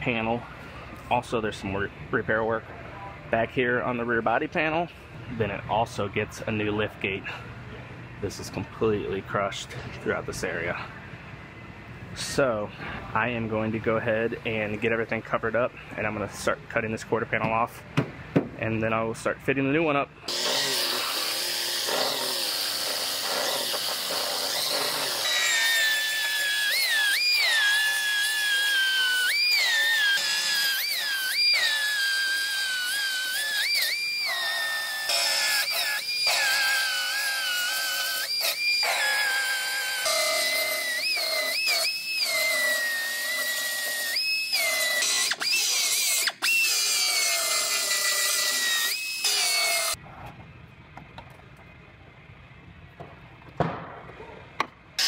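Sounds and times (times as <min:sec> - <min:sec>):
belt sander motor whine: 0:20.3 - 0:36.4
sander grinding sheet metal: 0:20.3 - 0:45.5.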